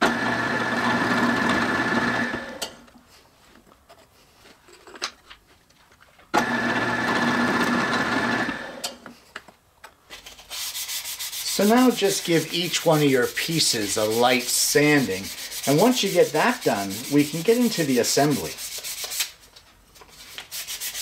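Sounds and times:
drill press motor humming: 6.4s - 8.9s
sandpaper rubbing on wood: 10.2s - 19.4s, 20.1s - 21.0s.

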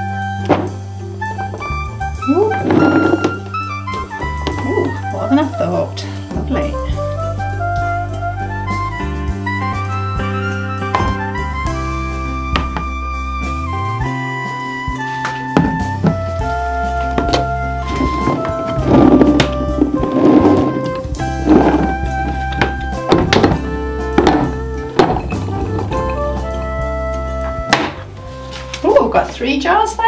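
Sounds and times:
instrumental background music: 0.0s - 30.0s.

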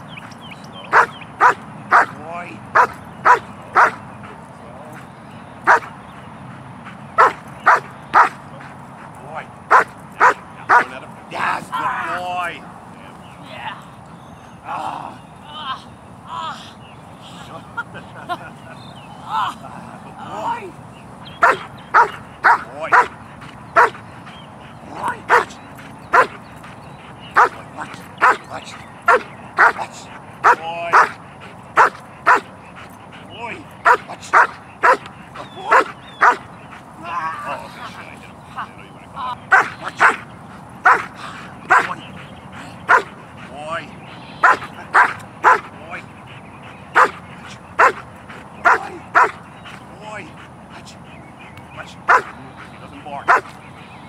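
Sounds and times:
dog barking sharply: 0.9s - 2.1s, 2.8s - 4.0s, 5.7s - 5.9s, 7.2s - 8.4s, 9.7s - 10.9s, 21.4s - 23.1s, 23.8s - 24.0s, 26.1s - 26.4s, 31.8s - 32.4s, 33.9s - 35.0s, 35.7s - 36.4s, 39.5s - 40.2s, 40.8s - 41.1s, 42.9s - 43.1s, 44.4s - 45.7s, 47.0s - 47.2s, 47.8s - 48.0s, 48.6s - 49.4s, 52.1s - 52.3s.

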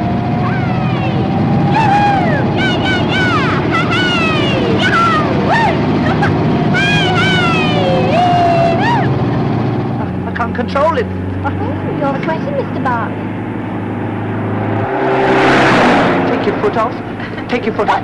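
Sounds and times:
rush of noise: 0.0s - 12.0s, 12.8s - 18.0s
car engine running hard: 0.0s - 18.0s.

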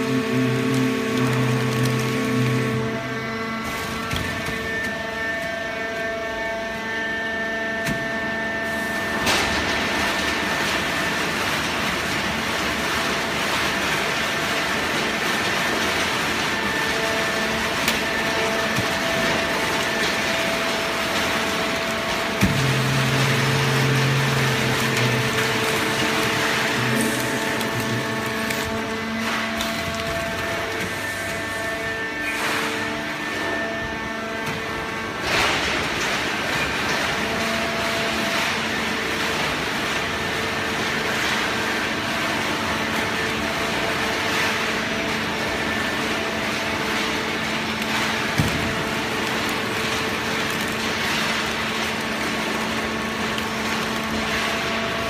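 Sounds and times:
baling press mechanical hum: 0.0s - 55.0s.

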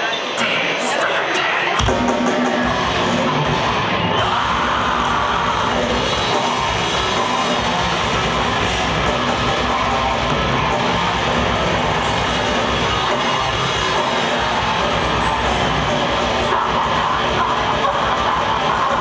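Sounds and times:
distorted electric guitars: 0.0s - 19.0s
bass guitar: 1.8s - 19.0s
fast drumming: 1.8s - 19.0s.

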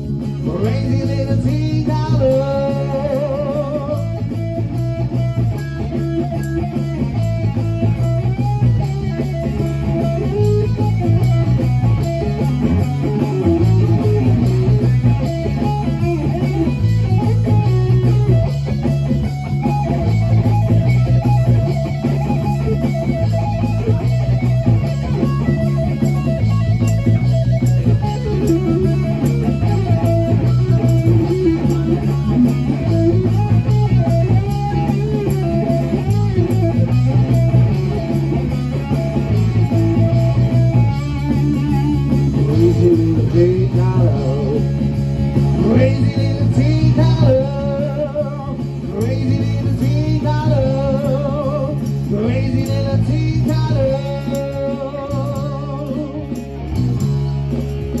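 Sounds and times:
bass line: 0.0s - 58.0s
electric guitar melody: 0.0s - 58.0s.

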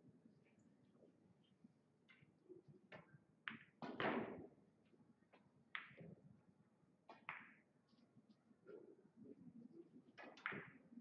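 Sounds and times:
pool balls clacking: 10.2s - 10.8s.

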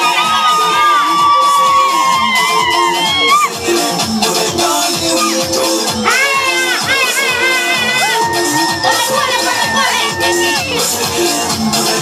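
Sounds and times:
crowd cheering: 0.0s - 3.7s, 7.0s - 12.0s
dance music with steady beat: 0.0s - 12.0s.

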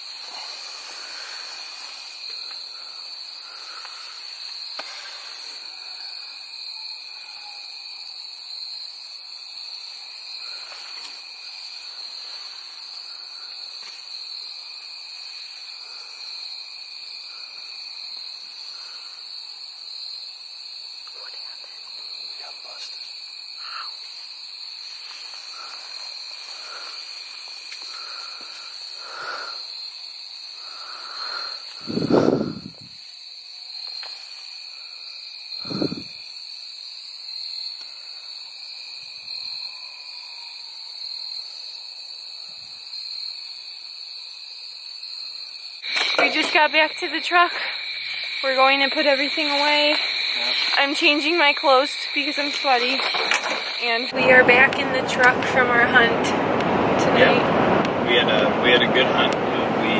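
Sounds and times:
insect chirps: 0.0s - 54.2s
insect drone: 0.0s - 59.9s.

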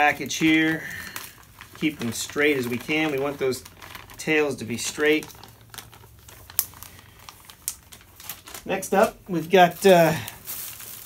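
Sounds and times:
plastic bag crinkling: 0.0s - 11.0s.

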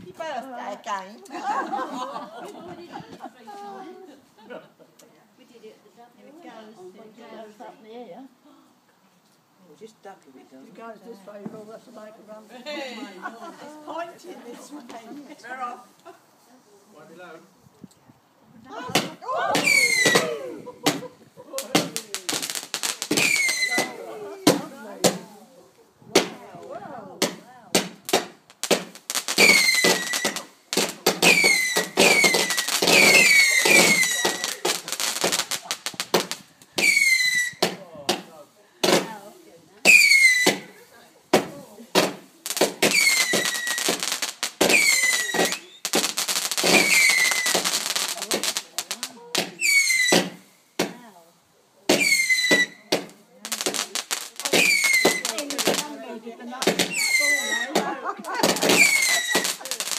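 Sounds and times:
firework bangs and crackles: 18.9s - 25.5s, 26.1s - 51.1s, 51.8s - 59.9s
firework whistles dropping in pitch: 36.8s - 37.6s.

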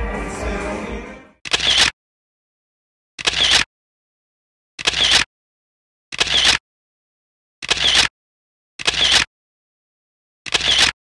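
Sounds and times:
music: 0.0s - 1.4s
camera shutter clicks: 1.5s - 1.9s, 3.2s - 3.7s, 4.8s - 5.3s, 6.2s - 6.6s, 7.6s - 8.1s, 8.8s - 9.3s, 10.5s - 11.0s.

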